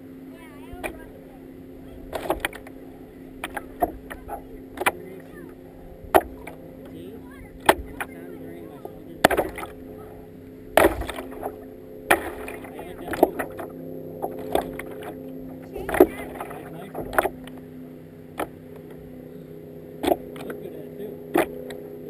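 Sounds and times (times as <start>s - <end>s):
steady low hum: 0.0s - 22.0s
paddle splashing into water: 2.0s - 2.8s, 6.1s - 6.6s, 9.2s - 9.8s, 10.7s - 15.2s.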